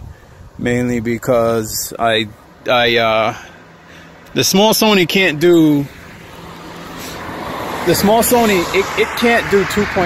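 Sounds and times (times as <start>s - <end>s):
vehicle tyre and road noise: 0.0s - 10.0s.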